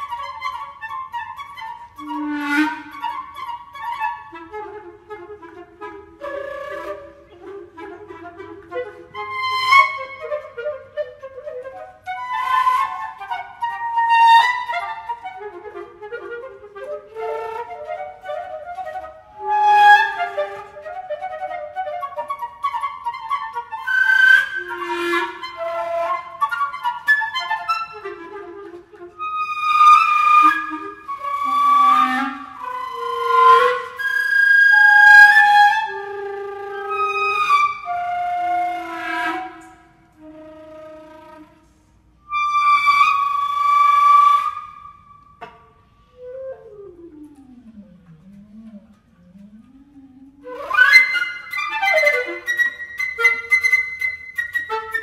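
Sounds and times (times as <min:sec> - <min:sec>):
flute and clarinet playing: 0:00.0 - 0:55.0.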